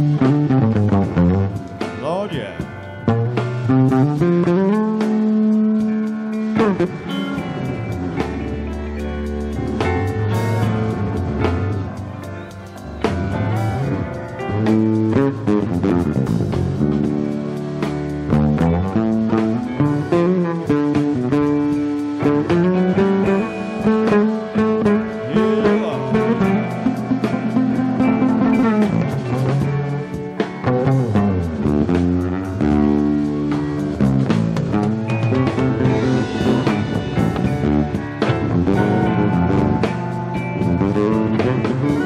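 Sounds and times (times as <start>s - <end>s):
electric bass plucked notes: 0.0s - 42.0s
drums hitting: 0.7s - 4.2s, 33.2s - 42.0s.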